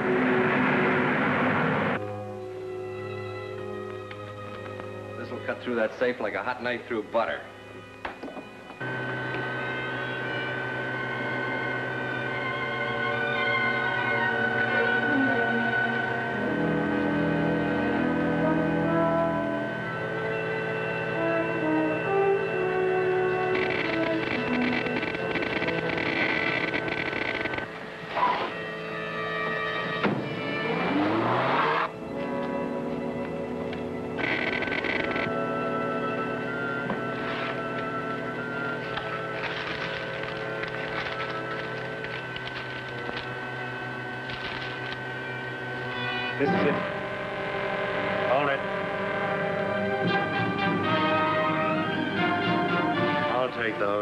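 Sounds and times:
orchestral dramatic chords: 0:08.8 - 0:25.4, 0:45.0 - 0:54.0.

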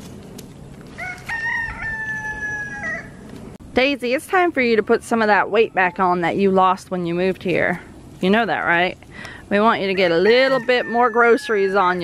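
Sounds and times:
rooster crowing: 0:00.9 - 0:03.2, 0:10.0 - 0:12.0.

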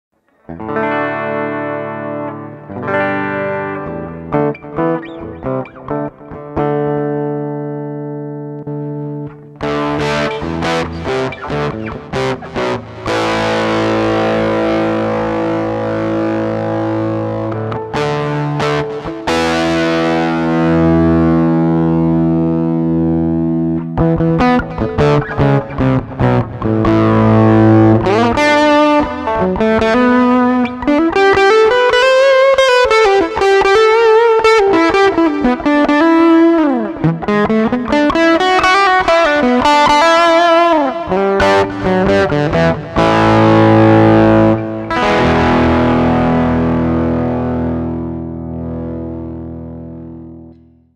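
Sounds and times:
distorted electric guitar: 0:00.2 - 0:50.9.

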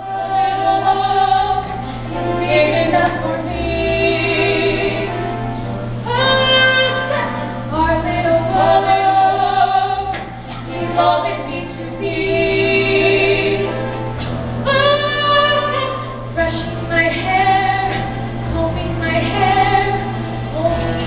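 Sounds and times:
women singing a stage duet: 0:00.0 - 0:05.2, 0:06.1 - 0:13.8, 0:14.7 - 0:21.0.

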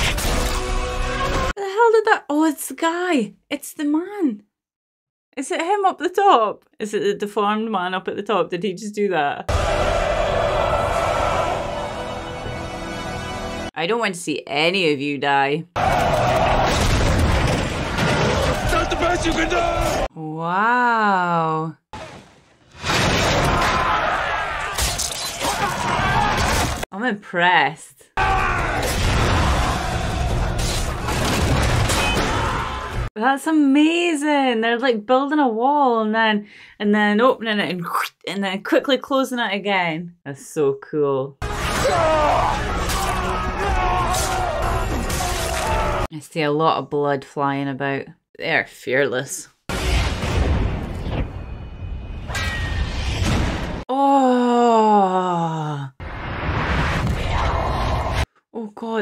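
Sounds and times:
men shouting: 0:09.5 - 0:12.2, 0:18.4 - 0:20.1, 0:41.8 - 0:46.1
soundtrack music: 0:09.6 - 0:13.7
combat sound effects: 0:28.2 - 0:33.1.

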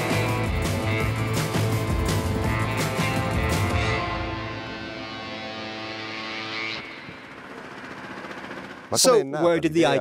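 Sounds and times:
background music with sustained notes: 0:00.0 - 0:07.3.

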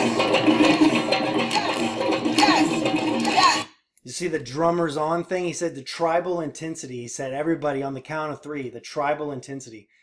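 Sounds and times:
drum hits: 0:00.0 - 0:03.7
steady music: 0:00.0 - 0:03.7.

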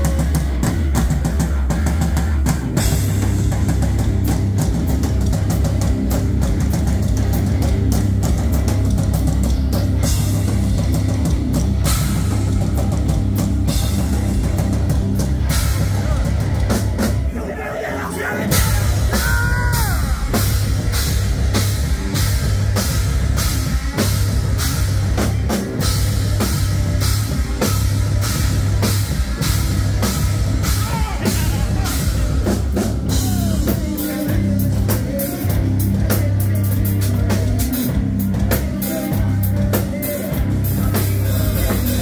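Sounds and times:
driving drum kit with cymbals: 0:00.0 - 0:17.4, 0:18.2 - 0:42.0
bass guitar: 0:00.0 - 0:42.0
distorted electric guitars: 0:00.0 - 0:42.0
heavy metal band playing: 0:00.0 - 0:42.0.

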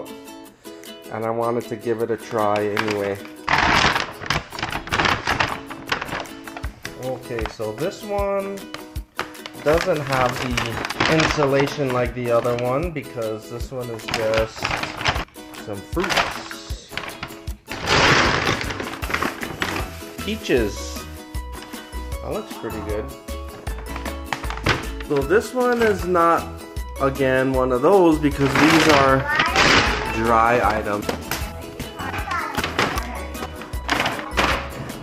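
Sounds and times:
background music: 0:00.0 - 0:35.0
paper bag crinkling: 0:02.4 - 0:07.7, 0:08.7 - 0:12.9, 0:13.8 - 0:35.0.

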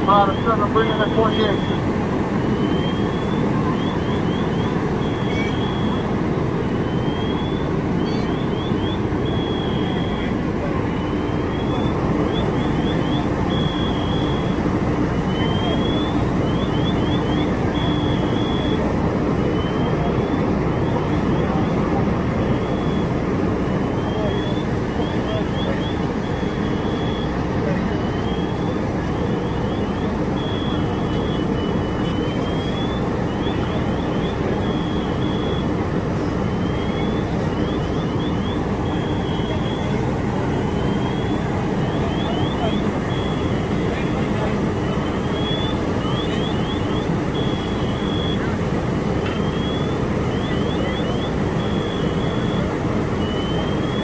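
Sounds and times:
fire engine running: 0:00.0 - 0:54.0.

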